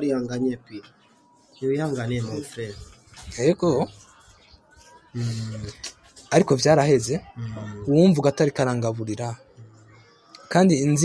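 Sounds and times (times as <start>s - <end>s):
man's low drawn-out voice: 5.2s - 5.7s, 7.3s - 7.9s.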